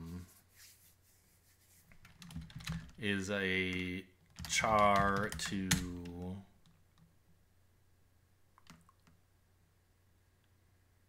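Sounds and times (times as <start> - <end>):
computer keyboard keystrokes: 2.0 - 3.0, 3.7 - 6.8.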